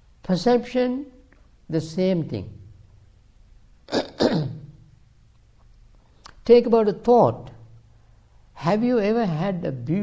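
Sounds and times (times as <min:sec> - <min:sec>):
man's short throat sound: 0:03.9 - 0:04.8.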